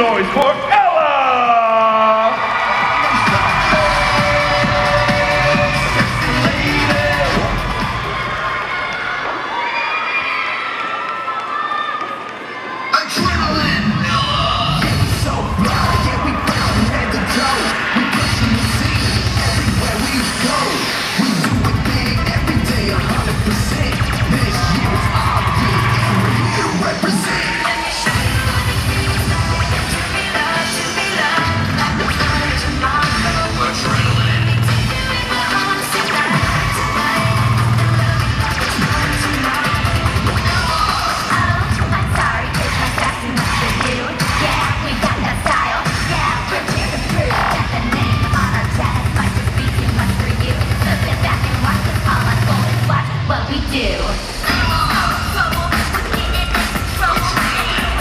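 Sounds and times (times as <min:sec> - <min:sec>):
bass-heavy cheer routine music: 0:00.0 - 0:09.4, 0:12.9 - 0:58.0
crowd cheering: 0:00.0 - 0:31.6, 0:32.2 - 0:50.9
children shouting: 0:05.7 - 0:13.1.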